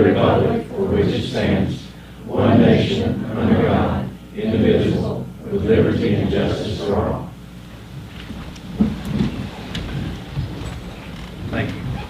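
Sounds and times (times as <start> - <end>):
chairs moving and shuffling: 7.7 - 12.0.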